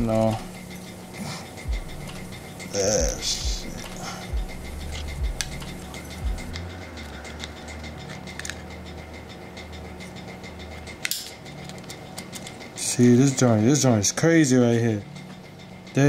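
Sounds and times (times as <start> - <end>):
low steady hum: 0.0 - 16.0
plastic parts clicking: 8.1 - 8.7.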